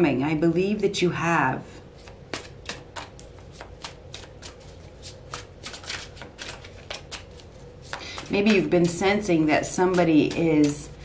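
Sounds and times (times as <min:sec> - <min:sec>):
cards being shuffled: 0:02.0 - 0:11.0.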